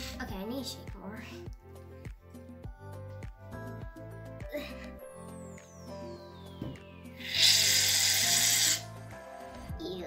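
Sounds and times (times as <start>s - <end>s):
aerosol can hissing: 7.2s - 8.9s.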